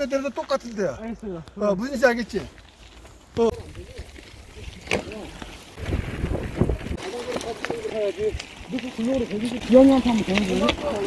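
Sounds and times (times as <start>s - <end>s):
bike tyres rolling on dirt: 0.0s - 11.0s
wind buffeting microphone: 3.6s - 11.0s.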